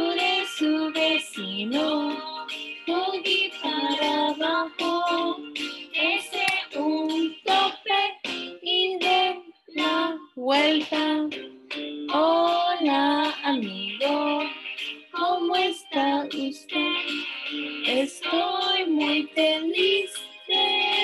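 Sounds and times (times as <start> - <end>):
children and woman singing: 0.0 - 11.4, 12.1 - 21.0
musical backing: 0.0 - 21.0.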